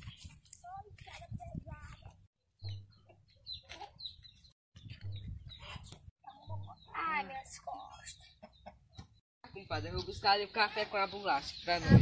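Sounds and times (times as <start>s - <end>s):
chickens clucking: 2.6s - 4.4s, 7.7s - 9.2s.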